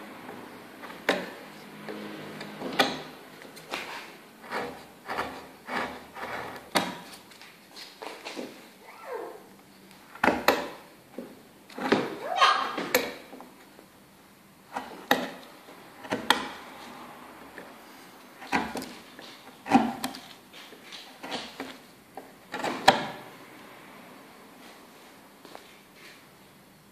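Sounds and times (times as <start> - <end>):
chisel cutting wood: 4.4 - 7.0.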